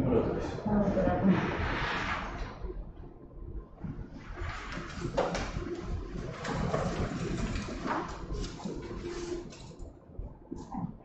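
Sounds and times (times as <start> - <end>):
paper rustling: 4.5 - 9.8.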